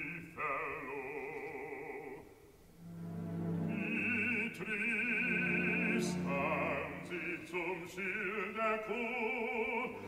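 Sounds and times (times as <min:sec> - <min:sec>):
opera singer with vibrato: 0:00.0 - 0:02.4, 0:03.7 - 0:10.0
soft orchestra: 0:00.0 - 0:10.0.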